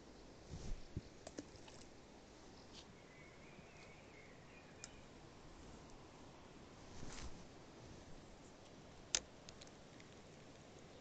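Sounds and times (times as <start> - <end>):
soft clicks: 4.8 - 5.0.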